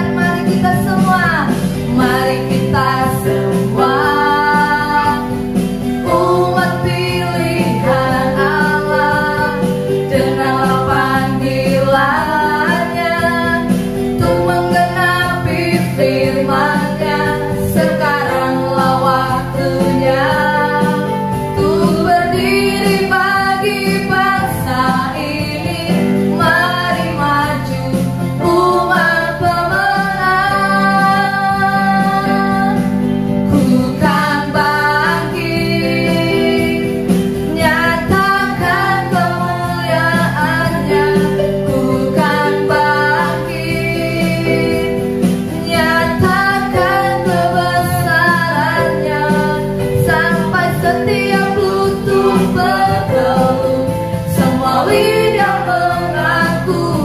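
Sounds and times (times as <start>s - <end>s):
electronic keyboard: 0.0s - 57.0s
women singing into microphones: 0.0s - 57.0s.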